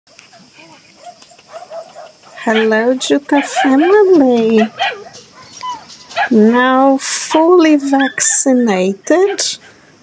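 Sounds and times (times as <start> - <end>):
puppies whimpering and yipping: 0.2 - 6.6.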